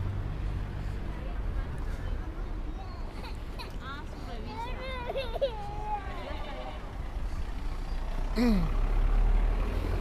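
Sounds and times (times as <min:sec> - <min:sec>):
rumble of passing vehicles: 0:00.0 - 0:10.0.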